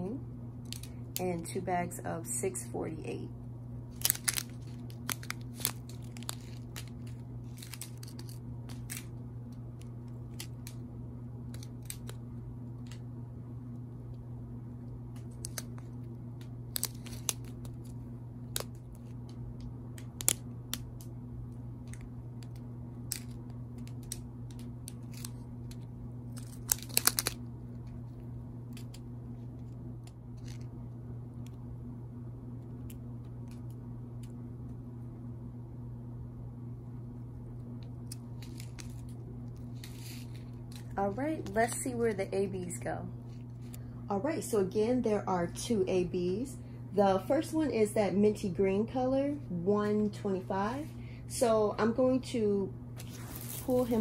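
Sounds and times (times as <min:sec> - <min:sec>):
steady low hum: 0:00.0 - 0:54.0
plastic bags crinkling: 0:03.9 - 0:09.1, 0:23.1 - 0:27.4, 0:53.0 - 0:54.0.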